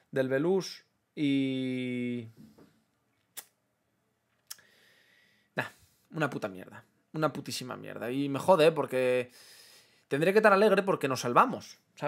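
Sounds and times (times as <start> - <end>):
mouth clicks: 3.3 - 3.6
soft intake of breath: 4.6 - 6.0, 9.3 - 10.1.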